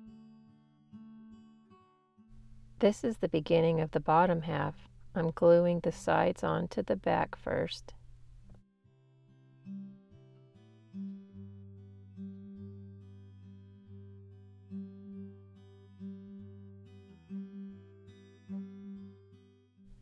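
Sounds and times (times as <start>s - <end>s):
plucked acoustic guitar: 9.5s - 20.0s.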